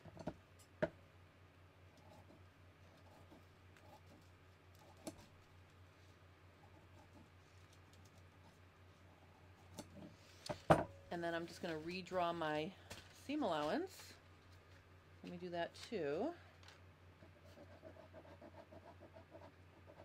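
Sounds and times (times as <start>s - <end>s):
low steady hum: 0.0s - 20.0s.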